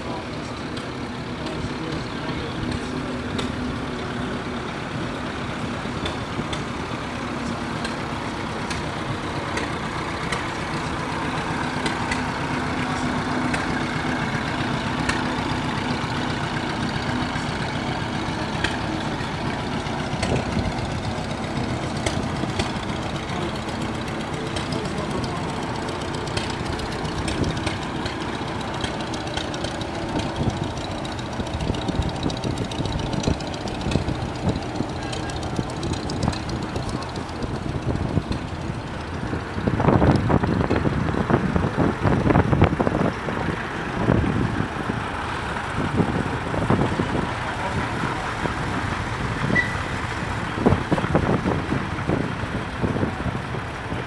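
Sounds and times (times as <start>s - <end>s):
tractor engines running: 0.0s - 54.0s
sharp exhaust ticks and pops: 0.4s - 4.8s, 5.5s - 54.0s.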